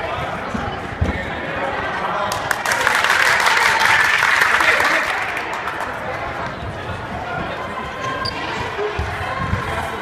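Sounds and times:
group clapping: 0:02.3 - 0:06.4.

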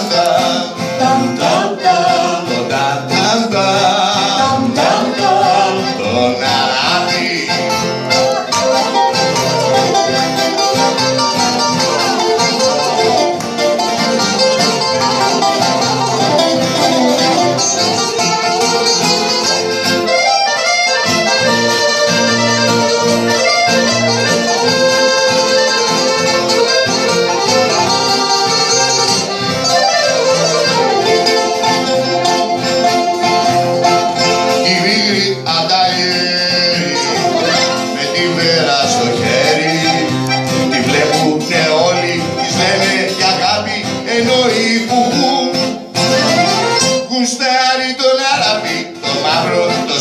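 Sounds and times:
accordion: 0:00.0 - 0:50.0
bouzouki: 0:00.0 - 0:50.0
guitar: 0:00.0 - 0:50.0.

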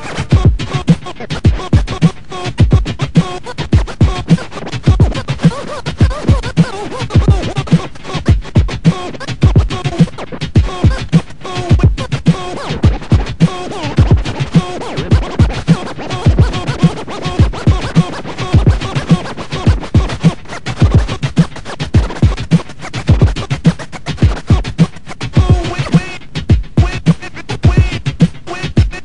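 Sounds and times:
steady kick drum beat: 0:00.0 - 0:29.0
turntable scratching: 0:00.0 - 0:29.0.

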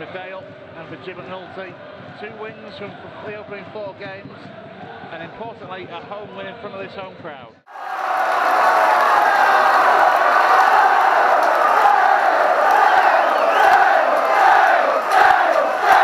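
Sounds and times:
football crowd chanting and cheering: 0:00.0 - 0:06.3, 0:07.7 - 0:16.0.

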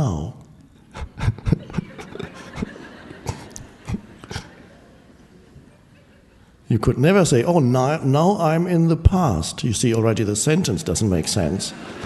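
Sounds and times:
man chuckling softly: 0:00.9 - 0:04.8.

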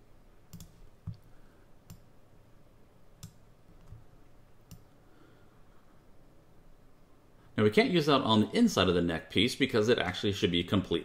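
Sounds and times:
computer mouse clicks: 0:00.5 - 0:02.1, 0:03.2 - 0:05.0.

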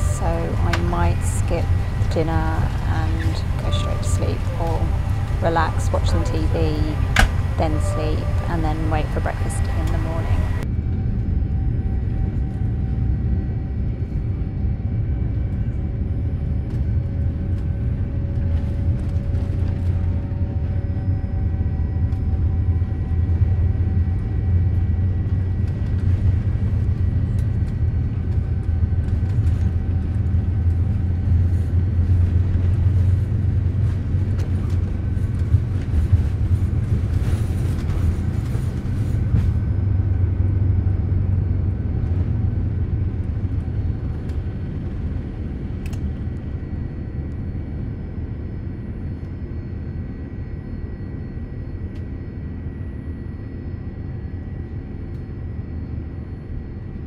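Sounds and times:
jet engines rumbling: 0:00.0 - 0:52.0.

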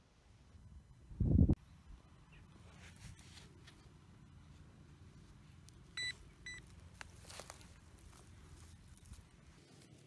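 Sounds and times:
faint rustling of soil and grass: 0:00.0 - 0:10.0
metal detector high beeps: 0:06.0 - 0:06.6.

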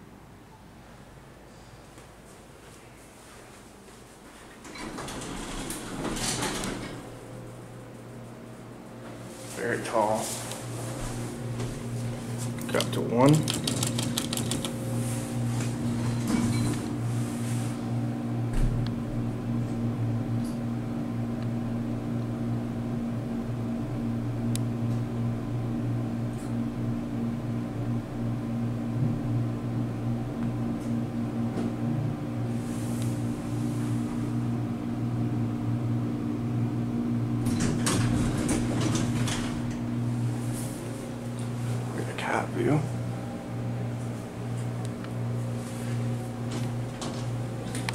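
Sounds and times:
low electrical hum in elevator: 0:00.0 - 0:47.9.

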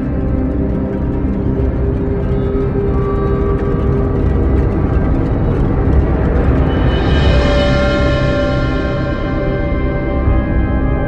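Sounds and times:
dark ambient music: 0:00.0 - 0:11.0
low rumbling drone: 0:00.0 - 0:11.0.

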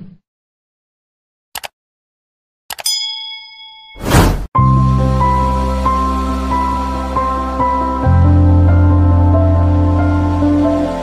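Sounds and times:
notification bell ding: 0:02.8 - 0:04.1
background music: 0:04.6 - 0:11.0.

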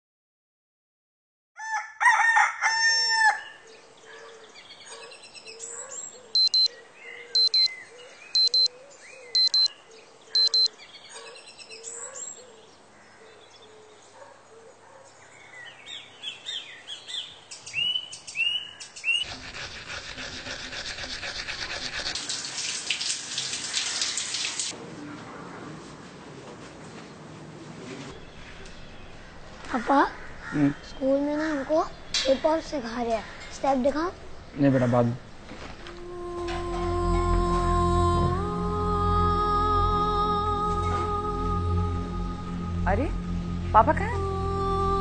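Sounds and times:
rooster crowing: 0:01.6 - 0:03.6
birds chirping: 0:03.4 - 0:19.3, 0:28.1 - 0:35.8
electronic alarm beeps: 0:06.4 - 0:06.7, 0:07.4 - 0:07.7, 0:08.4 - 0:08.7, 0:09.4 - 0:09.7, 0:10.4 - 0:10.7
shower water spray: 0:20.5 - 0:24.8.

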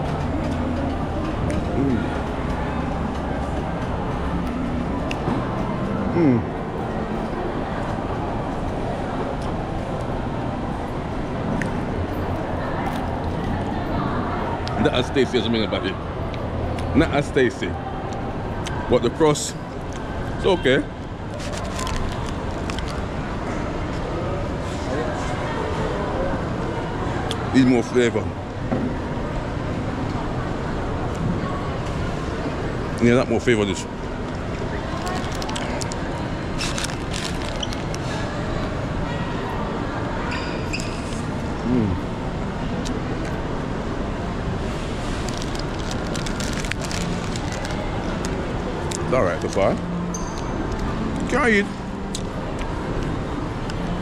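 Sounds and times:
faint chatter of shoppers: 0:00.0 - 0:54.0
steady mall hum: 0:00.0 - 0:54.0.

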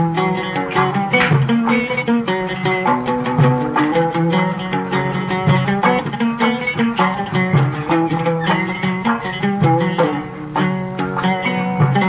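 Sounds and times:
oud plucked notes: 0:00.0 - 0:12.0.

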